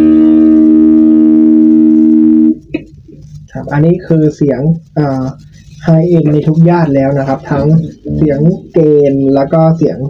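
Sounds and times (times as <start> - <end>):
distorted electric guitar chord: 0.0 - 2.8.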